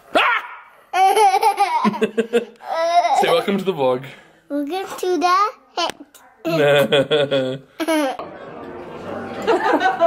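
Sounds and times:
toddler boy laughing: 0.9 - 3.6, 7.8 - 8.2.

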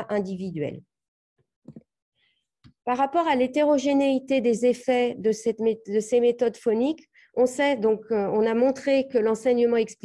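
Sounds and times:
woman's voice: 0.0 - 0.9, 2.8 - 10.0.

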